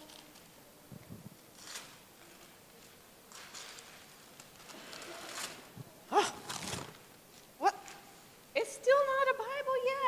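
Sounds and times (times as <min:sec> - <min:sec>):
paper wrapping tearing: 0:01.5 - 0:05.7, 0:06.4 - 0:07.0
person exclaiming oh: 0:06.1 - 0:06.5.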